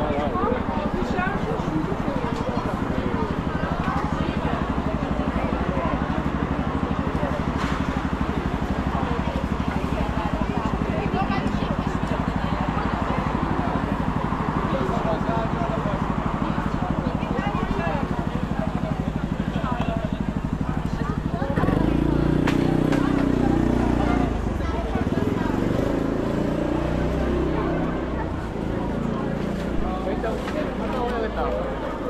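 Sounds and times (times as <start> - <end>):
louder engine sound: 0.0 - 32.0
passers-by talking: 0.0 - 32.0
scooter engine idling: 0.0 - 32.0.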